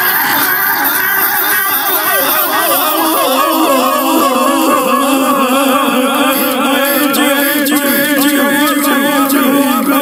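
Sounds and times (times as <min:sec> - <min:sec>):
overlapping cartoon voices: 0:00.0 - 0:10.0.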